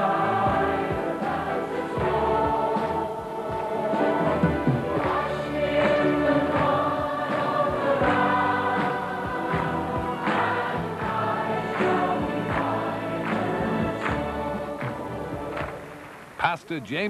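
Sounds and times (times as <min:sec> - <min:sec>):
choir singing a hymn: 0:00.0 - 0:16.1
instrumental accompaniment: 0:00.0 - 0:16.5.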